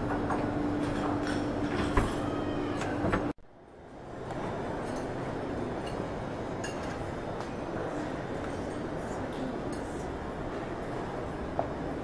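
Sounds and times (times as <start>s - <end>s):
glassware clinking: 5.8s - 7.0s.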